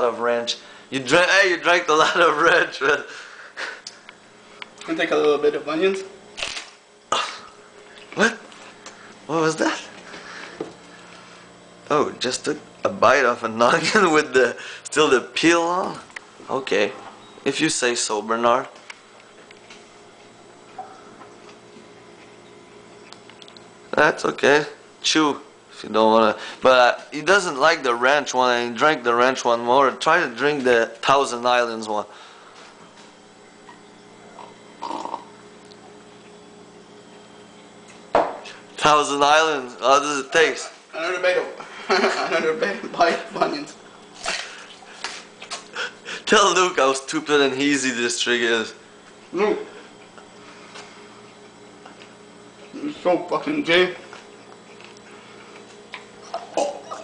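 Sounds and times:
quiet room hum: 0.0s - 57.0s
man chewing raw onion: 54.1s - 57.0s.

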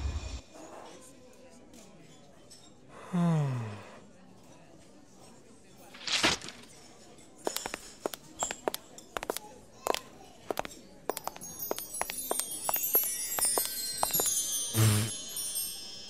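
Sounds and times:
sharp clinks: 7.5s - 16.0s
wind chime cascade: 11.1s - 16.0s.

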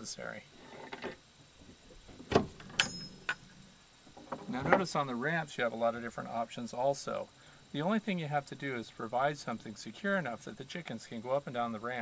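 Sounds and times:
latch click with metallic ring: 2.3s - 3.4s.

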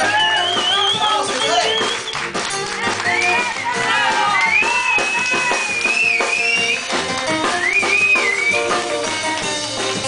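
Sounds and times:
bass: 0.0s - 10.0s
drums: 0.0s - 10.0s.

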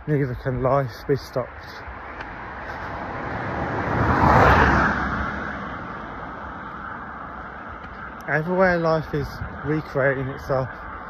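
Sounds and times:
car passing by: 1.7s - 11.0s.

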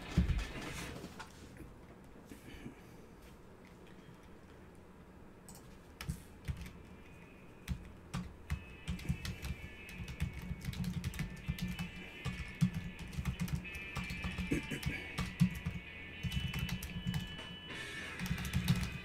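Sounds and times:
music: 7.1s - 19.0s.

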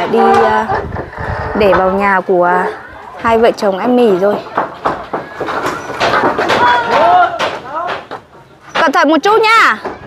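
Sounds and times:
people talking: 0.0s - 4.6s
roofing sheets clattering: 3.2s - 10.0s.

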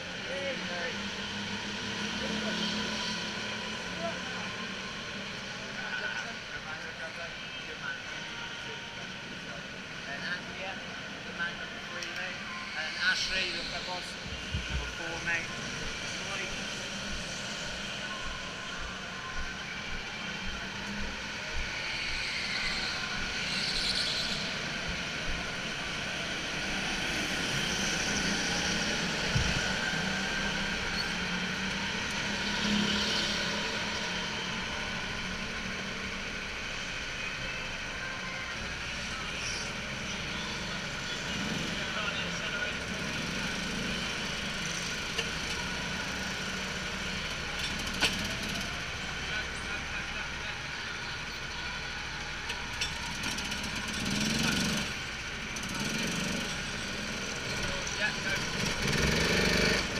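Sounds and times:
go-kart engines idling: 0.0s - 59.9s.

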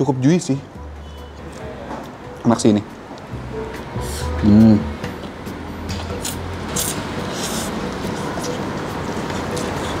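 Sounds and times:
person slurping and chewing noodles: 6.0s - 10.0s.

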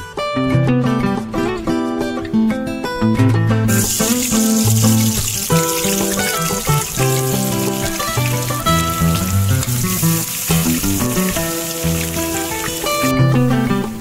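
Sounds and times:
onion sizzling in hot oil: 3.7s - 13.2s.

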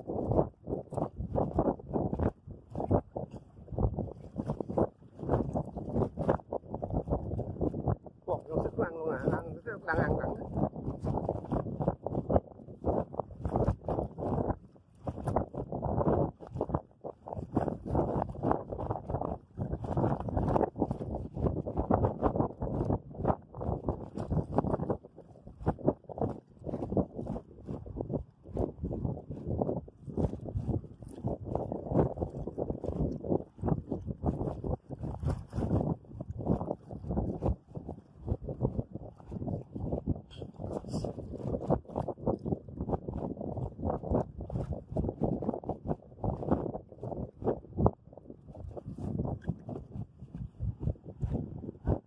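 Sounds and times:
wind on microphone: 0.0s - 52.0s.

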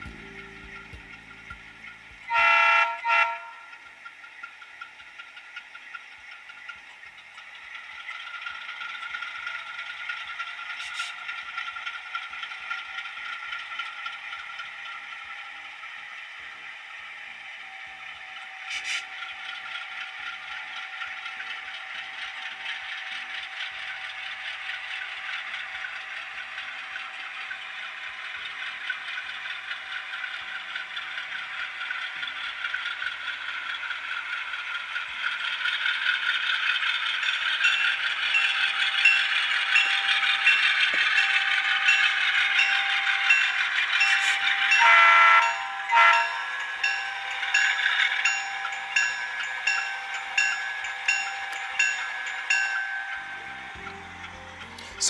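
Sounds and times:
model locomotive diesel engine sound: 0.0s - 55.0s
locomotive horn: 2.2s - 3.9s, 44.2s - 46.5s.

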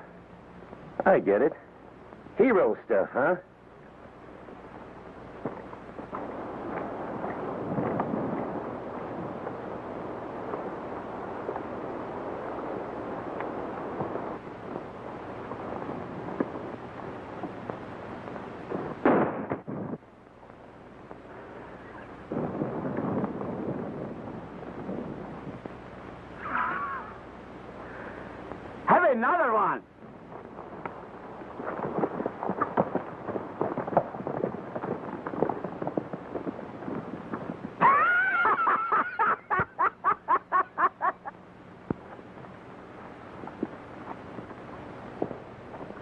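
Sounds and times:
film soundtrack hiss: 0.0s - 46.0s
man laughing: 26.4s - 27.2s, 37.8s - 41.4s
horses galloping hoofbeats: 30.0s - 39.9s.

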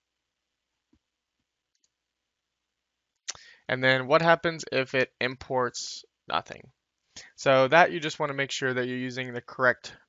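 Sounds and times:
faint mouse clicks: 1.7s - 2.0s.

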